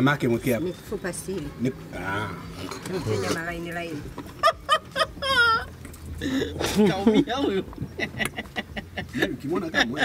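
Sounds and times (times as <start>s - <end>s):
people talking: 6.6s - 7.7s, 9.1s - 10.0s.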